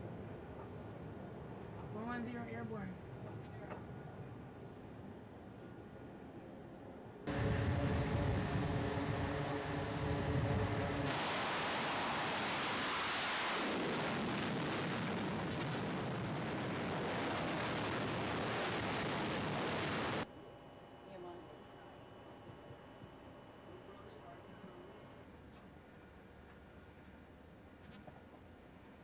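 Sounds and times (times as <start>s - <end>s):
jet engine whine: 7.3s - 20.3s
jet exhaust roar: 7.3s - 20.3s.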